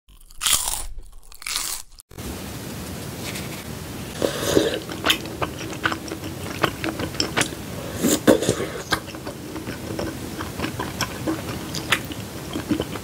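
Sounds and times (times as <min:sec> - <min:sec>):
loud crunchy bites: 0:00.1 - 0:02.0
wet sticky noodle sounds: 0:04.1 - 0:13.0.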